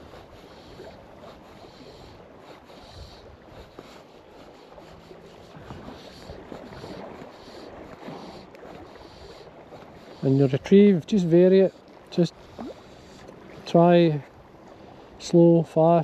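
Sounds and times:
wind on microphone: 0.0 - 11.1
waves lapping on shore: 0.0 - 16.0.

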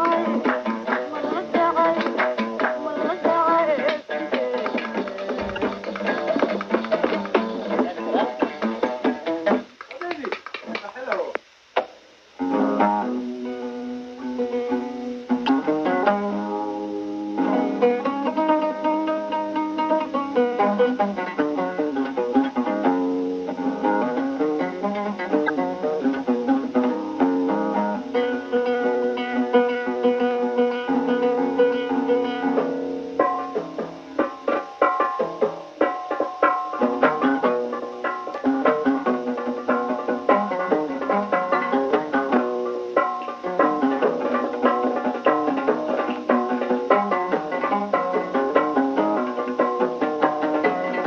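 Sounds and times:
oud playing plucked melody: 0.0 - 9.8, 11.8 - 51.0.

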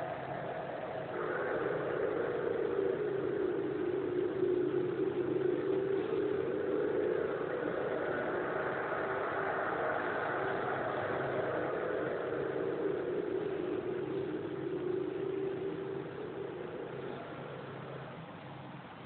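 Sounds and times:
steady drone: 0.0 - 19.0.

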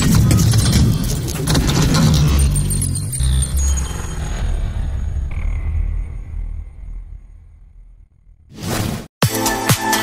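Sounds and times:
deep steady rumble: 1.5 - 8.5.

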